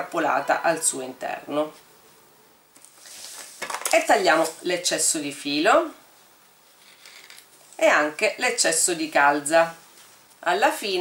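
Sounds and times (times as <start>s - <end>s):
woman speaking: 0.0s - 1.8s, 3.9s - 6.0s, 7.8s - 9.8s, 10.4s - 11.0s
soft rustle of handling: 1.6s - 4.9s, 6.1s - 8.0s, 9.6s - 10.6s.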